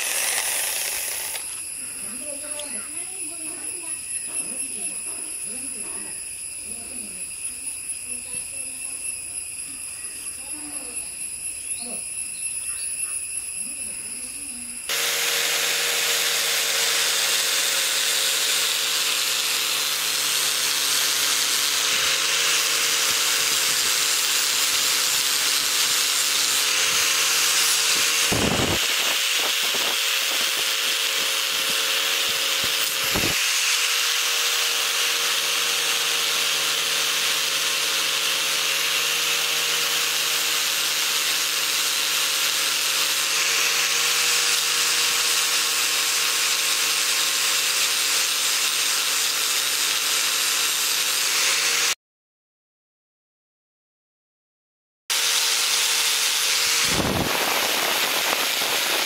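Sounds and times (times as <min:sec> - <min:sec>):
angle grinder motor whine: 0:00.0 - 0:52.0, 0:55.1 - 0:59.0
buffing wheel hissing on metal: 0:00.0 - 0:52.0, 0:55.1 - 0:59.0.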